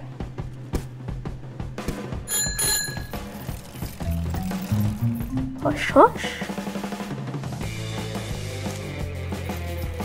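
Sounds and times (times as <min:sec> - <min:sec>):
background music: 0:00.0 - 0:10.0
bicycle bell ringing: 0:02.3 - 0:05.3.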